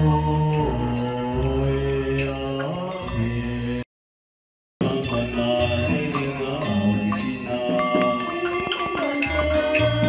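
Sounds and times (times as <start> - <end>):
chanting through a microphone: 0.0 - 3.8, 4.8 - 10.0.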